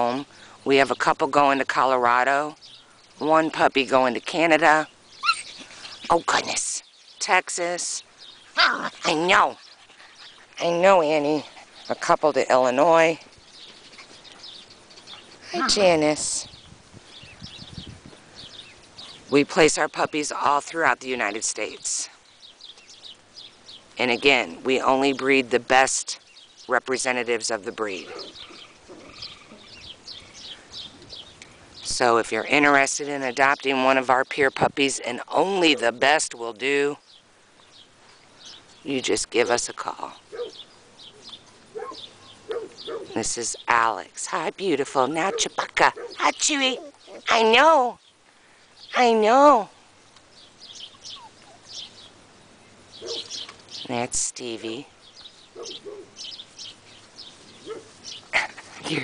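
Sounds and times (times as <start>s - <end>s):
small bird chirping: 2.4s - 25.2s, 26.0s - 59.0s.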